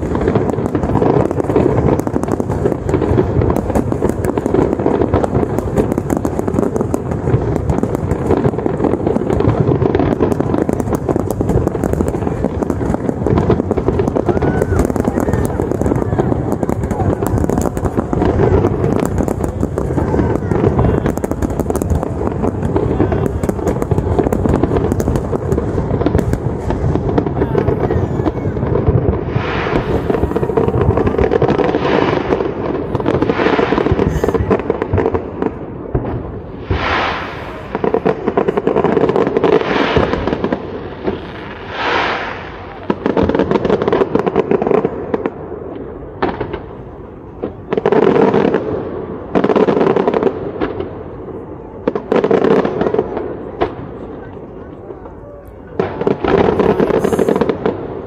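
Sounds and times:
fireworks crackling and popping: 0:00.0 - 0:58.0.

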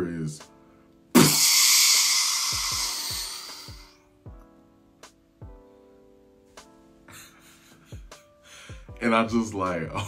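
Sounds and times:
person hissing with mouth: 0:01.2 - 0:03.9.

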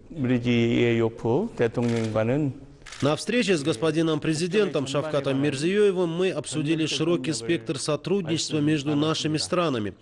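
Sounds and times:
man talking: 0:00.1 - 0:10.0.

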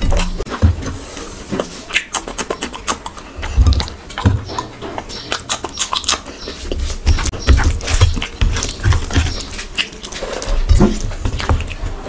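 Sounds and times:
low chewing thumps: 0:00.0 - 0:12.0
wet chewing and lip smacks: 0:01.2 - 0:12.0.

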